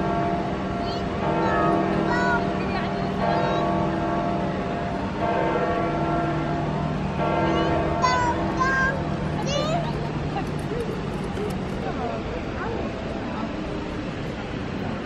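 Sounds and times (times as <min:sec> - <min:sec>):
crowd voices: 0:00.0 - 0:05.4, 0:06.8 - 0:15.0.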